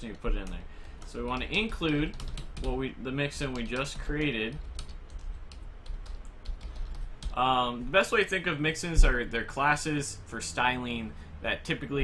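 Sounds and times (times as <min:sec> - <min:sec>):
computer keyboard keystrokes: 0:00.4 - 0:02.8, 0:03.4 - 0:07.4.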